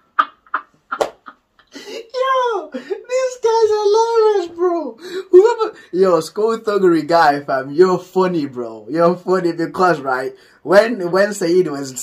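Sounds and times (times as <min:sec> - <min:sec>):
man laughing high and squealing: 0:00.0 - 0:04.0.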